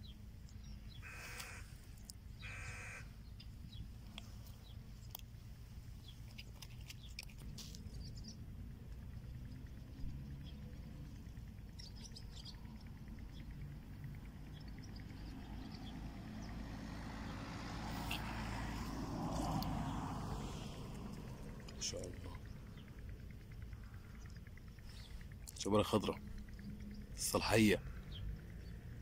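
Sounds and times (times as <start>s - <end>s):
small birds chirping: 0.0s - 29.0s
low background rumble: 3.1s - 29.0s.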